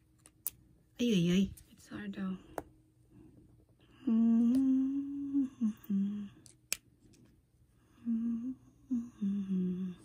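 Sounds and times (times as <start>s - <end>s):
woman humming: 3.9s - 6.5s, 7.9s - 10.0s.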